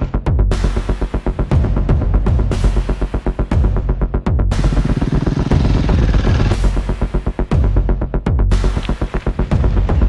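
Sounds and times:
electronic music with throbbing beat: 0:00.0 - 0:10.0.

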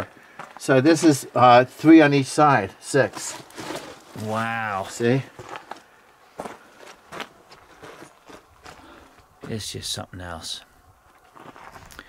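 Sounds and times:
faint crunching footsteps: 0:00.0 - 0:09.9, 0:10.6 - 0:12.0.

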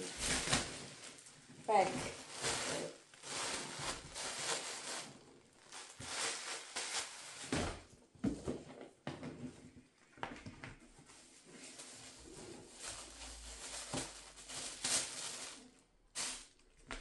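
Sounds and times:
plastic bag crinkling: 0:00.0 - 0:07.9, 0:11.5 - 0:17.0.

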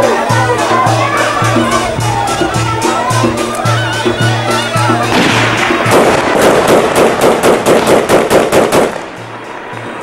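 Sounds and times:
rapid gunshots: 0:05.1 - 0:09.1.

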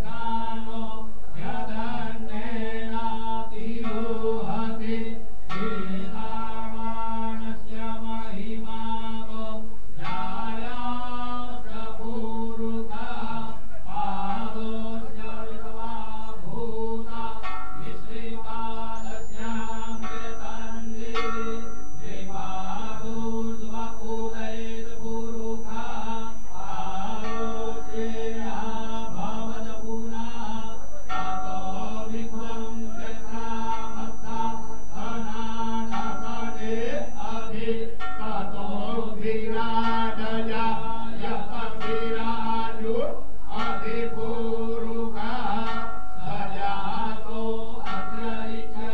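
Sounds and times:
mantra chanting: 0:00.0 - 0:48.9
steady drone: 0:00.0 - 0:48.9.

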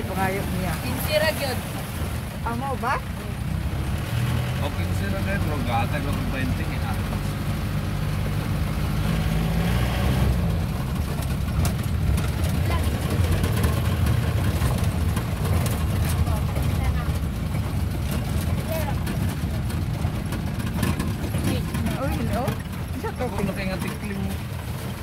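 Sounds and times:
car engine running: 0:00.0 - 0:25.0
tyre noise on dirt road: 0:00.0 - 0:25.0
rattles and knocks: 0:02.2 - 0:25.0.

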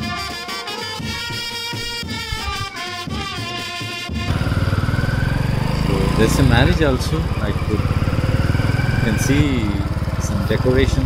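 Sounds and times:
motorcycle engine running: 0:04.2 - 0:11.0.

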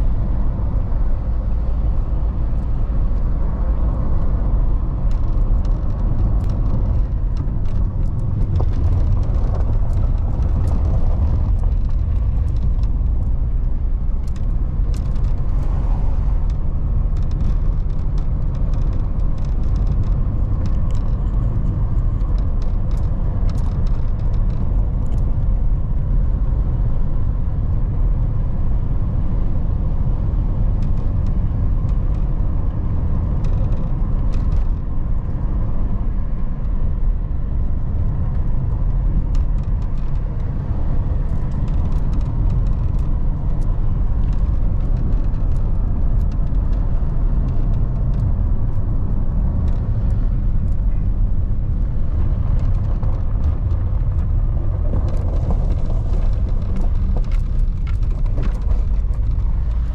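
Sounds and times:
car engine and tyre rumble: 0:00.0 - 0:59.9
small clicks and rattles: 0:04.9 - 0:15.8, 0:16.4 - 0:28.2, 0:29.6 - 0:59.9.

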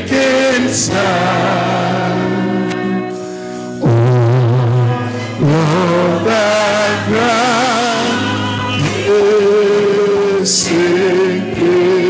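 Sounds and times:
man singing with vibrato: 0:00.0 - 0:12.0.

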